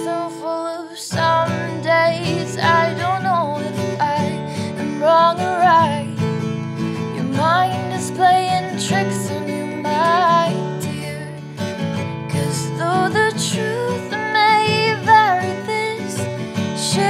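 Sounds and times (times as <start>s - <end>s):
woman singing wordless melody: 0.0s - 6.2s, 7.1s - 17.0s
acoustic guitar strumming: 0.0s - 17.0s.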